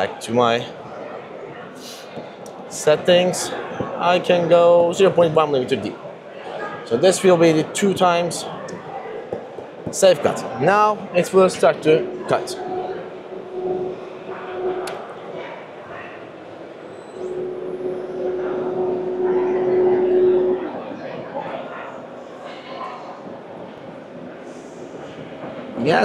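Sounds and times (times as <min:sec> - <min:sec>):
murmur of exhibition hall crowd: 0:00.0 - 0:26.0
lathe cutting tone: 0:11.5 - 0:15.1.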